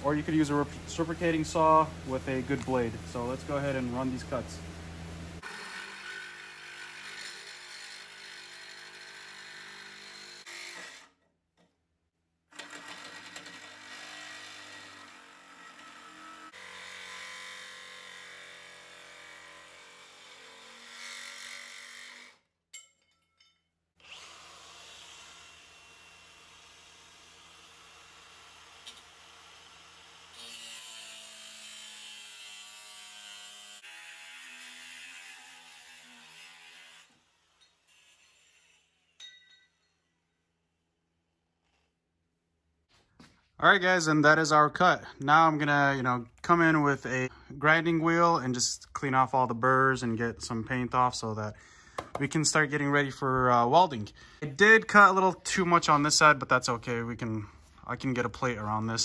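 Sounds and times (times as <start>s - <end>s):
angle grinder cutting metal: 5.4s - 11.2s, 12.6s - 22.4s, 24.0s - 39.2s
reciprocating saw cutting steel: 5.4s - 11.2s, 12.6s - 22.4s, 24.0s - 39.2s.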